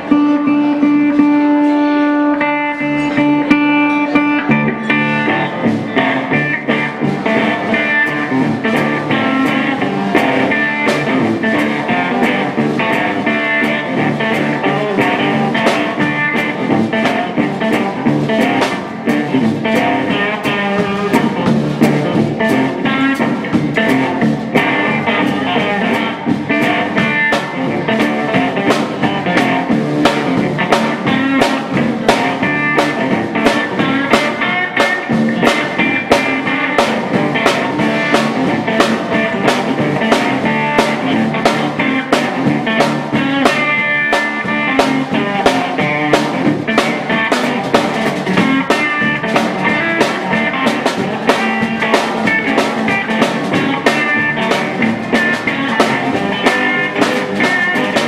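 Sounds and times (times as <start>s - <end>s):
drum kit beat: 0.0s - 58.0s
electric guitar blues: 0.0s - 58.0s.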